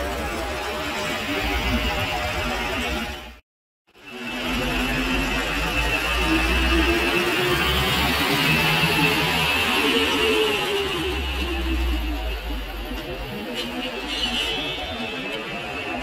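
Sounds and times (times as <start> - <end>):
cars and bus driving past: 4.0 - 16.0.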